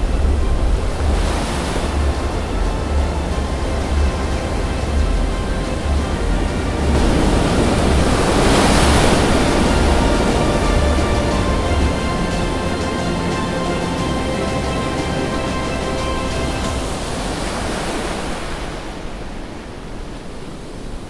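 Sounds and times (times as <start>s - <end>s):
background music with pulsing bass: 0.0s - 17.1s
ocean waves washing: 0.0s - 21.0s.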